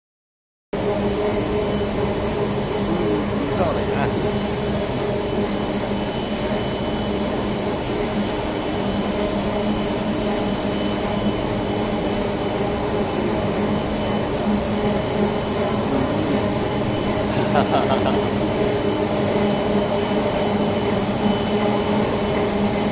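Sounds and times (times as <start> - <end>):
production line mechanical hum: 0.8 - 22.9.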